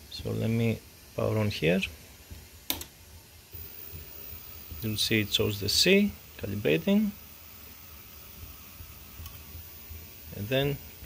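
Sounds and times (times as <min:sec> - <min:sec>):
high-pitched electronic whine: 0:03.6 - 0:11.0.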